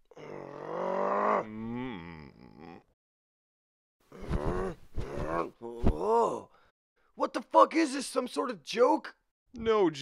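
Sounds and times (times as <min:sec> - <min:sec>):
man groaning with strain: 0:00.1 - 0:02.9.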